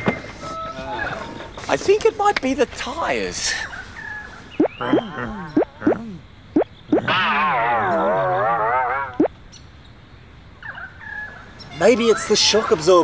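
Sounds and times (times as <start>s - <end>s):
wobbling cartoon warble: 4.6s - 9.3s
springy cartoon boings: 4.6s - 9.4s.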